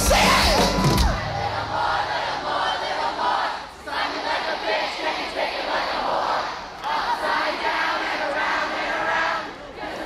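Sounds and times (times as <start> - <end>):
concert crowd cheering and yelling: 0.0 - 3.0.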